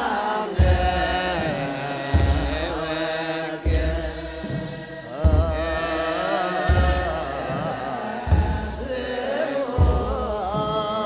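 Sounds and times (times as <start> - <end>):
group of voices chanting: 0.0 - 11.0
jingle of shaken sistra: 0.0 - 11.0
deep drum stroke: 3.6 - 10.9.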